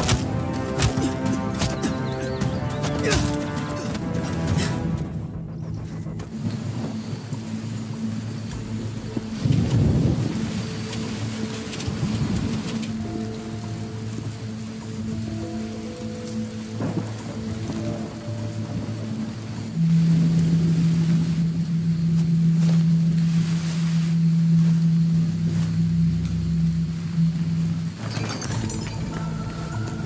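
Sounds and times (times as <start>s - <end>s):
rain: 0.0s - 30.0s
tense music score: 0.0s - 30.0s
thunder rumbling: 6.3s - 22.0s.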